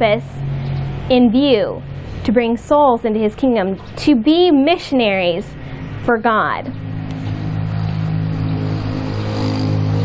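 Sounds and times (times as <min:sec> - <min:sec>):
motor droning: 0:00.0 - 0:10.0.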